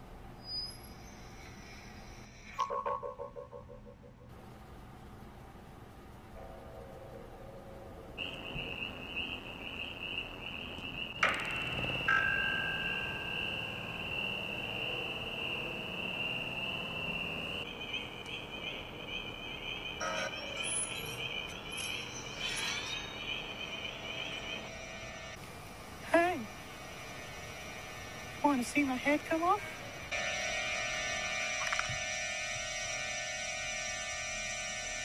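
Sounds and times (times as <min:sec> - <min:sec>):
high-pitched warbling whine: 0:06.6 - 0:25.4.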